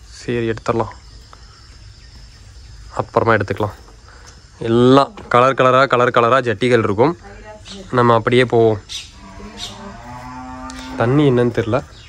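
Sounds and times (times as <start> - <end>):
people talking: 4.6 - 8.8, 11.0 - 11.9.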